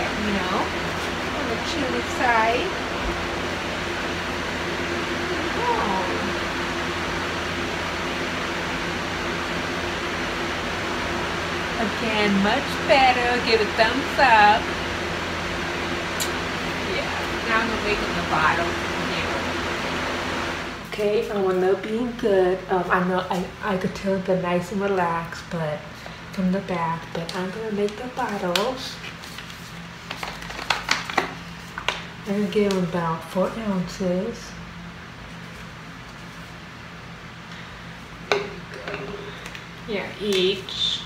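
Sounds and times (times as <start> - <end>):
electric fan humming: 0.0 - 41.0.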